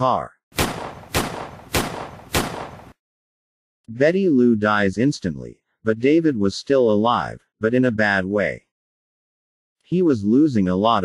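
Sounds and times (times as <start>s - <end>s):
gunshots with echo: 0.6s - 3.0s.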